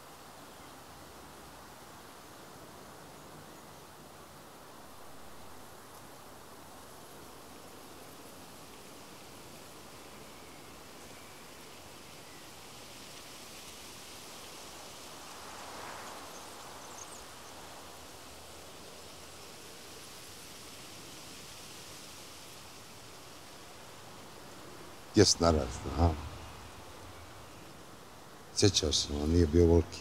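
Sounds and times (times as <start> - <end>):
wind in leaves: 0.0 - 30.0.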